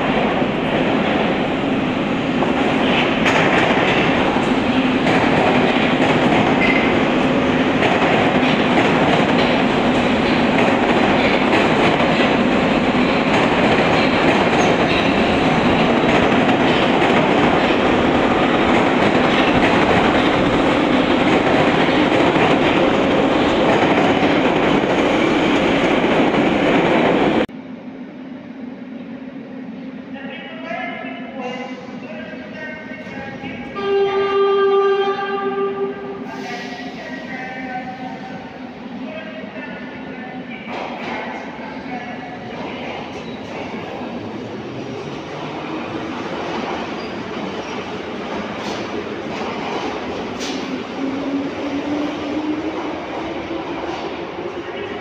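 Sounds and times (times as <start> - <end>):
train wheels rumbling on rails: 0.0 - 27.6, 30.9 - 55.0
train horn: 33.7 - 36.1.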